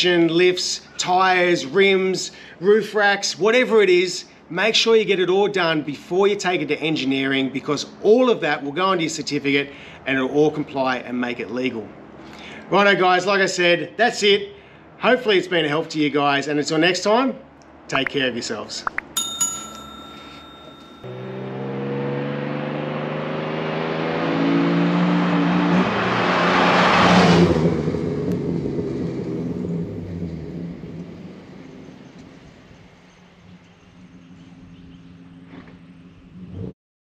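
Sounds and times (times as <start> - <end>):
car engine accelerating: 21.1 - 32.9.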